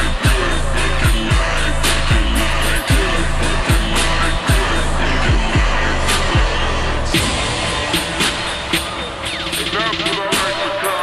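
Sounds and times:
hip hop beat with sharp drum hits: 0.0s - 11.0s
pitched-down voice: 0.0s - 11.0s.

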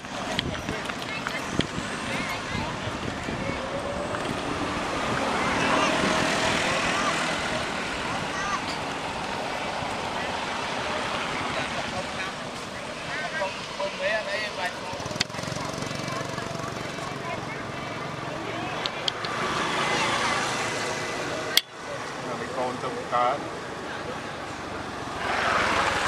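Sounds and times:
distant people talking: 0.0s - 26.0s
outdoor background noise: 0.0s - 26.0s.

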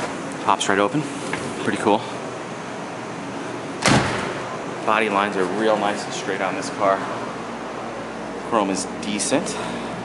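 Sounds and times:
car door shutting: 3.8s - 4.5s.

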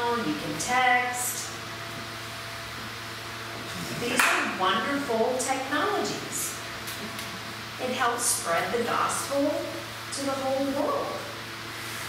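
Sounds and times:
low constant hum: 0.0s - 12.0s.

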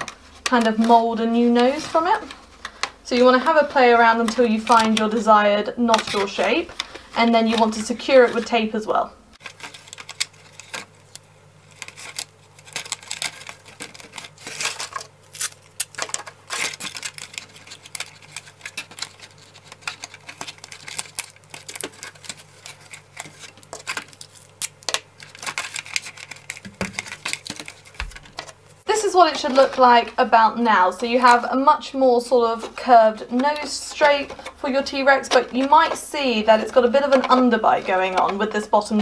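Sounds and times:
plastic bottle crackling: 9.4s - 28.6s
masking tape tearing: 9.6s - 28.4s.

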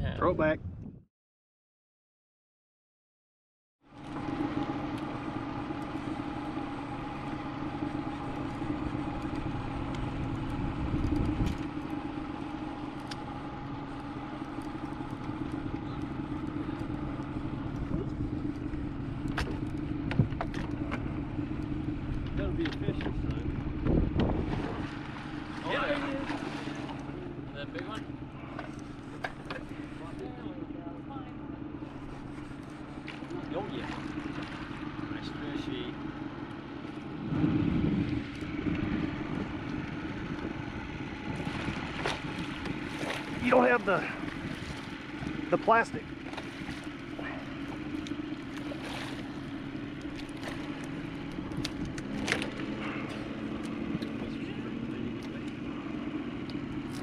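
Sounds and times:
boat motor running: 3.8s - 57.0s.

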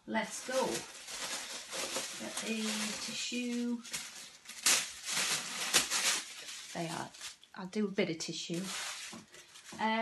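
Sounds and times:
tissue paper rustling and crackling: 0.2s - 7.5s, 8.4s - 10.0s.

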